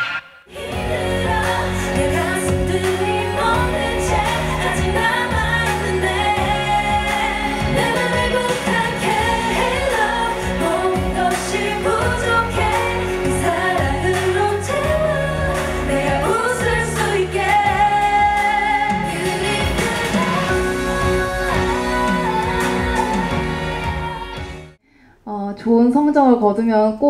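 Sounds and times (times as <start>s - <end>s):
pop backing track: 0.0s - 24.8s
women singing into microphones: 0.5s - 24.8s.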